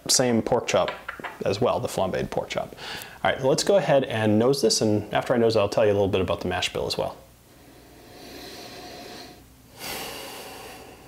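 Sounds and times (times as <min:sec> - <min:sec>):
man sniffing: 0:07.8 - 0:11.0.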